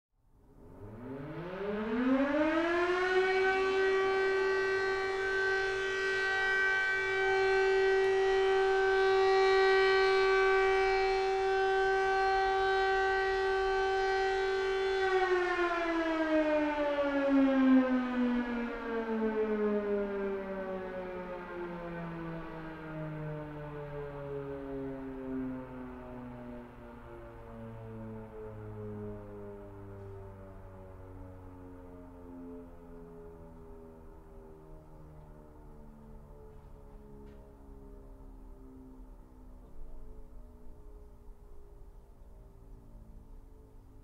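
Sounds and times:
siren: 0.3 - 44.0.

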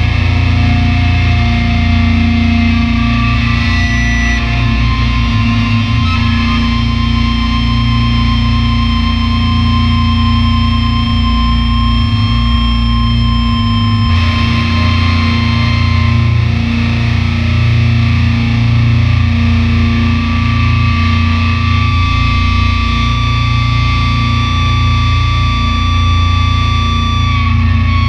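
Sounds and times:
distorted electric guitar droning: 0.0 - 28.0
heavy bass: 0.0 - 28.0.

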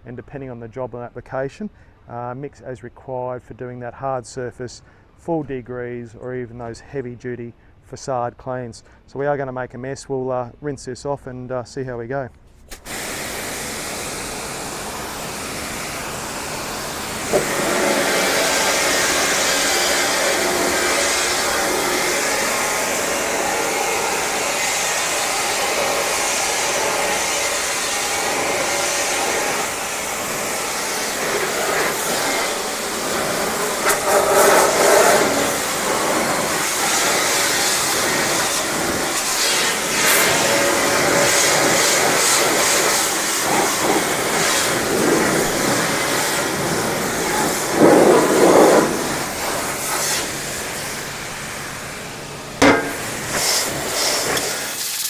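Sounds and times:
pressure washer spraying metal: 12.7 - 55.0.

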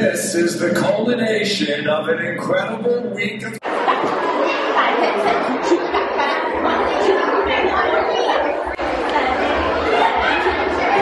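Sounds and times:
many voices chattering: 0.0 - 11.0.

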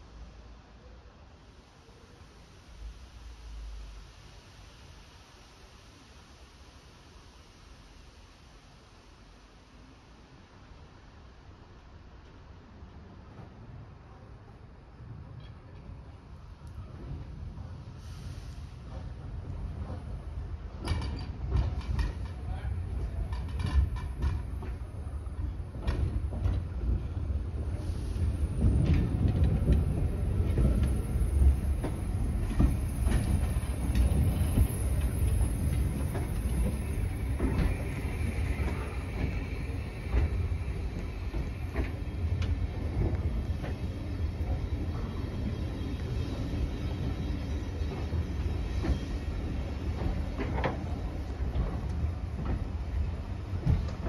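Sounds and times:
railway carriages rumbling: 12.8 - 54.0
wheels clicking over rail joints: 20.8 - 24.9.

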